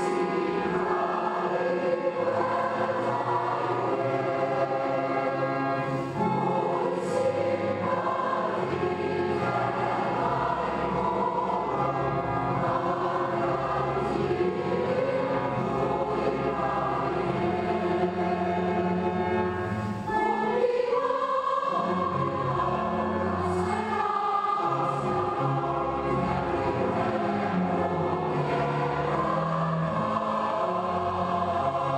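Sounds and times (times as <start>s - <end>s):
choir singing held chords: 0.0s - 31.9s.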